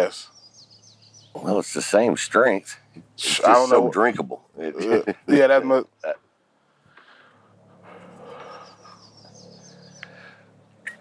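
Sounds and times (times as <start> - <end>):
man laughing quietly: 4.6 - 5.5.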